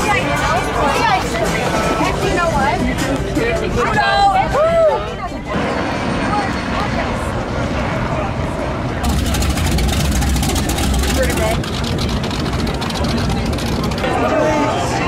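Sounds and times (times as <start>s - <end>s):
crowd chatter: 0.0s - 15.0s
powerboat exhaust burble: 5.6s - 14.8s.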